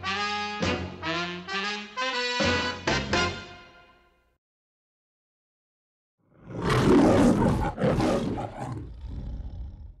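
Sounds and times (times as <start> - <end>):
lion roaring: 6.3 - 10.0.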